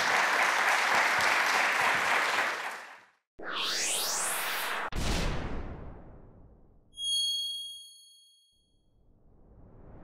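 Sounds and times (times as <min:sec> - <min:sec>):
high bell-like chime: 0:07.0 - 0:08.7.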